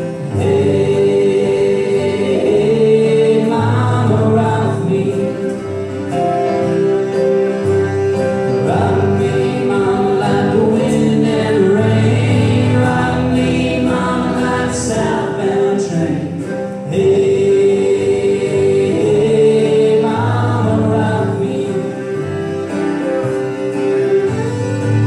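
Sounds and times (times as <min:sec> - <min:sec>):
person singing: 0:00.0 - 0:07.2, 0:08.4 - 0:25.0
fiddle: 0:00.0 - 0:25.0
strummed acoustic guitar: 0:00.0 - 0:25.0.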